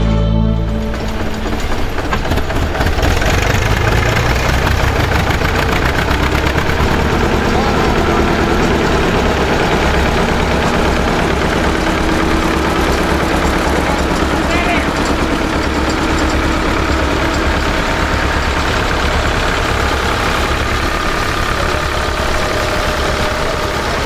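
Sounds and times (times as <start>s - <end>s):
tractor engines chugging: 0.0s - 24.0s.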